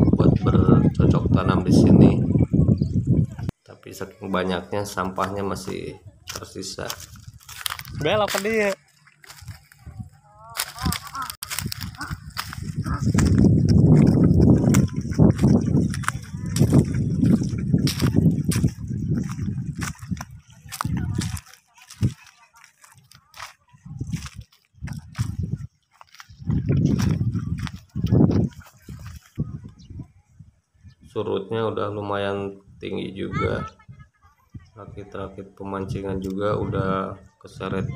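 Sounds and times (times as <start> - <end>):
microphone rumbling noise: 0.0 - 3.6, 9.3 - 22.2, 23.8 - 31.2
footsteps on dirt path: 4.9 - 29.9
child's voice: 10.2 - 12.2, 33.3 - 34.5.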